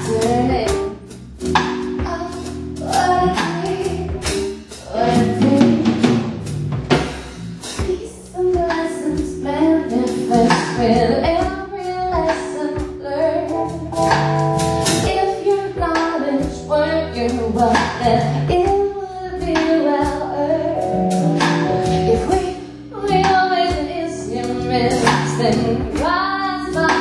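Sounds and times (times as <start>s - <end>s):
woman singing: 0.0s - 0.9s, 2.0s - 6.1s, 7.8s - 13.8s, 15.0s - 20.8s, 21.8s - 27.0s
band music: 0.0s - 27.0s
drums: 0.0s - 27.0s
held chords: 19.9s - 27.0s.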